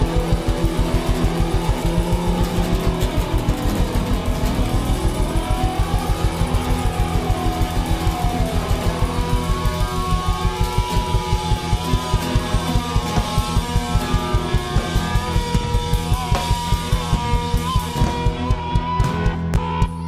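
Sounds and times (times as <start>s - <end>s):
tone sweeping up and down: 0.0s - 17.6s
rock band playing: 0.0s - 20.0s.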